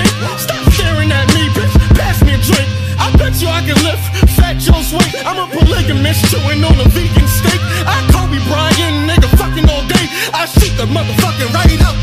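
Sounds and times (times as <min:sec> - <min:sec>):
rapping over a beat: 0:00.0 - 0:12.0
sustained bass line: 0:00.0 - 0:12.0.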